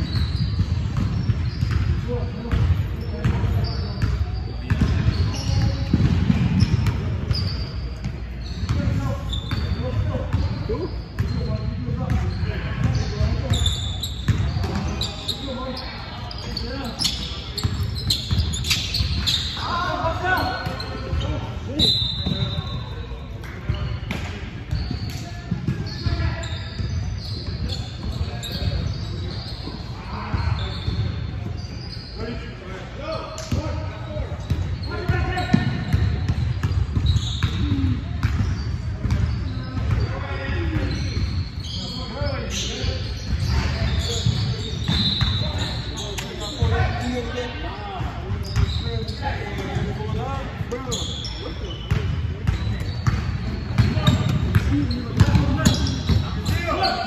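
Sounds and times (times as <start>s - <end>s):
sneaker squeaks: 0.0s - 57.0s.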